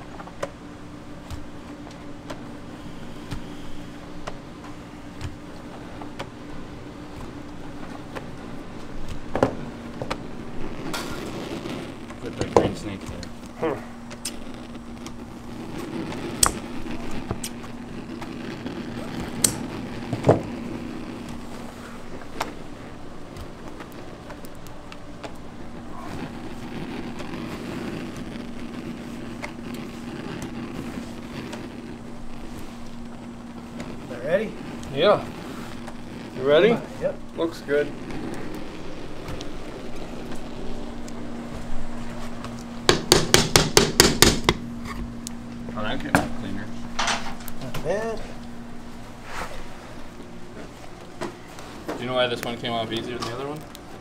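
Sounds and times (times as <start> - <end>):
low equipment hum: 0.0 - 54.0.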